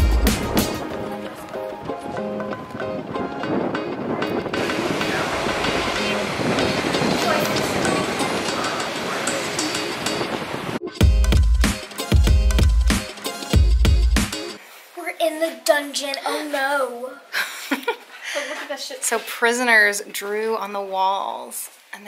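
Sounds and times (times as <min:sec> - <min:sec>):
beat with heavy bass: 0:00.0 - 0:01.3, 0:11.0 - 0:14.5
background music: 0:00.0 - 0:14.6.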